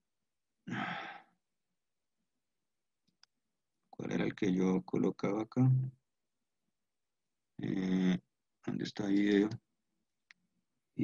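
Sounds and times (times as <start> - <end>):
man sighing: 0.7 - 1.3.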